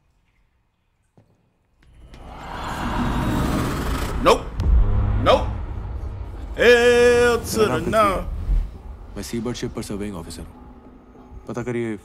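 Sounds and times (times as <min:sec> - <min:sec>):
hissing wash: 0:02.3 - 0:11.8
deep rumble: 0:04.0 - 0:11.8.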